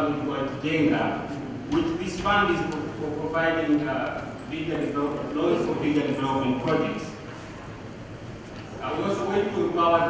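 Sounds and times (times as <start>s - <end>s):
man speaking into a microphone: 0.0s - 7.2s, 8.7s - 10.0s.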